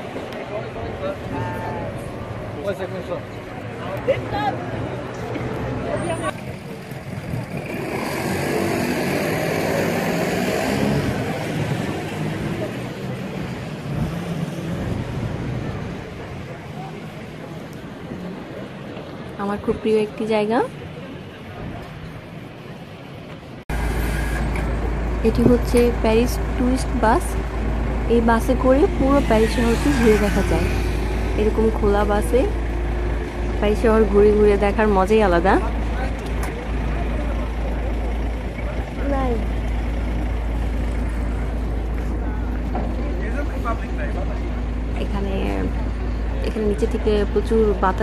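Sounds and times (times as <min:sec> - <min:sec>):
street background: 0:00.0 - 0:48.0
bus driving past rumbling: 0:22.3 - 0:48.0.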